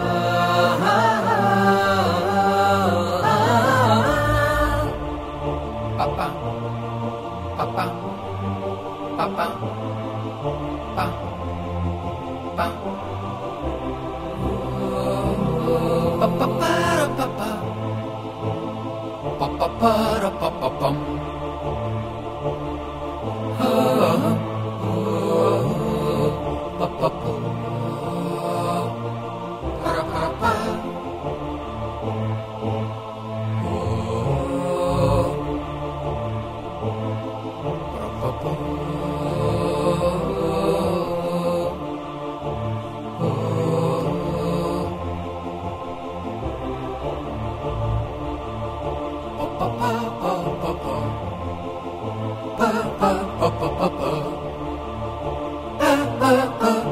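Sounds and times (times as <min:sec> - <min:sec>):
voices singing a cappella: 0:00.0 - 0:56.9.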